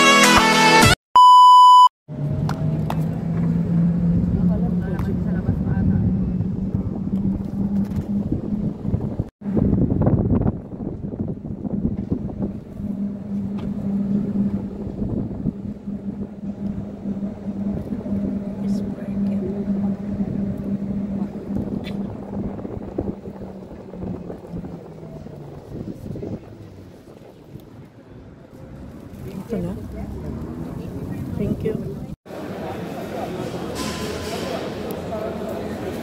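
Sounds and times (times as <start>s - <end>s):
electronic beep: 1.2s - 1.9s
steady hum: 2.1s - 27.0s
low rumble: 2.1s - 32.2s
intro music: 12.1s - 24.9s.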